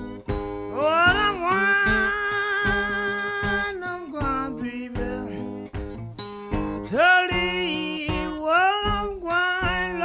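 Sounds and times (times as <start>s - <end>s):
plucked acoustic guitar: 0.0s - 10.0s.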